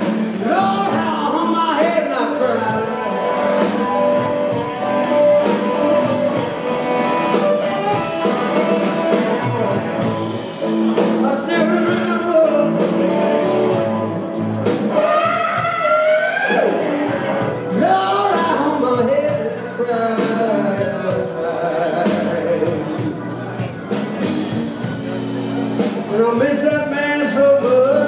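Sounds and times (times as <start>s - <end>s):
bass: 0.0s - 28.0s
drums: 0.0s - 28.0s
electric guitar bending notes: 0.0s - 28.0s
keyboard: 0.0s - 28.0s.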